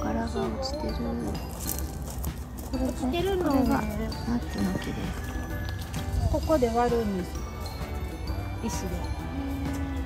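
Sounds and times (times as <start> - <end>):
background music: 0.0 - 10.0
footsteps on gravel: 1.2 - 7.2.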